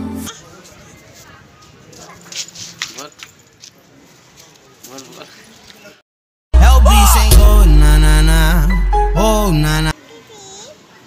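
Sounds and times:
outdoor background noise: 0.0 - 6.0, 9.8 - 11.0
small children's voices: 10.0 - 11.0.

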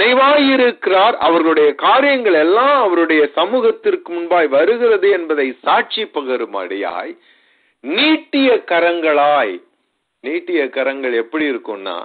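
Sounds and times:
man preaching over telephone line: 0.0 - 7.2, 7.8 - 12.0.

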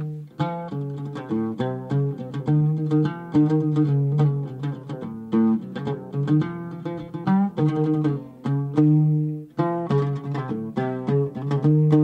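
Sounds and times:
oud plucked with plectrum: 0.0 - 12.0.

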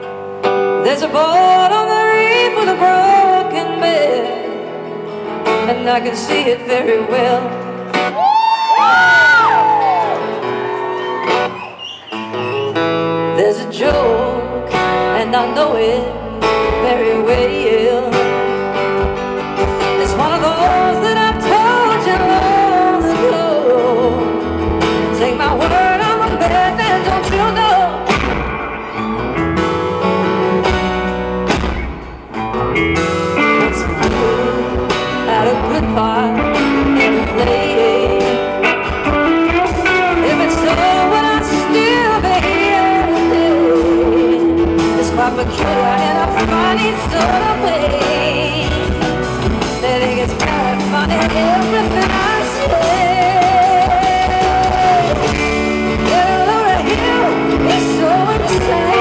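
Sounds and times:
live band playing rock ballad: 0.0 - 59.0
woman singing: 0.7 - 9.9, 13.2 - 28.3, 33.4 - 59.0
strummed acoustic guitar: 11.5 - 59.0.

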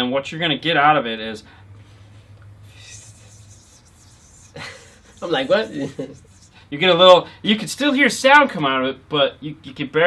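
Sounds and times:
breathy laugh: 4.5 - 6.3.

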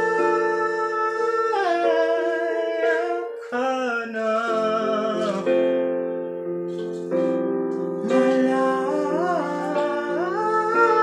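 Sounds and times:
man singing with vibrato: 0.0 - 5.9, 8.0 - 11.0
piano accompaniment: 0.0 - 11.0.

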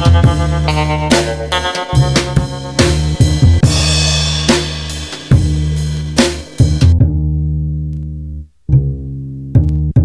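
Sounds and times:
low bass notes: 0.0 - 10.0
sharp drum hits: 1.1 - 7.0.

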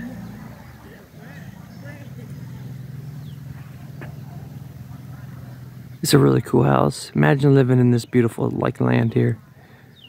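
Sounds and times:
motorbike engine cruising: 0.0 - 10.0
road noise: 0.0 - 10.0.

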